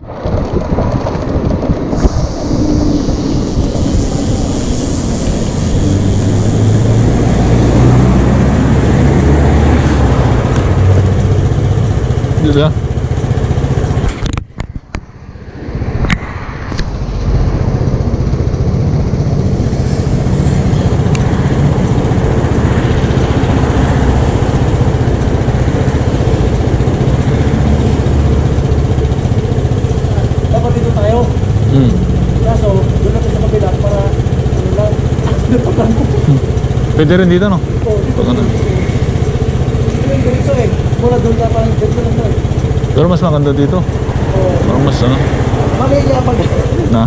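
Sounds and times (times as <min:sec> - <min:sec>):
scooter engines rumbling: 0:00.0 - 0:47.0
street traffic: 0:00.0 - 0:47.0
voices: 0:29.8 - 0:47.0.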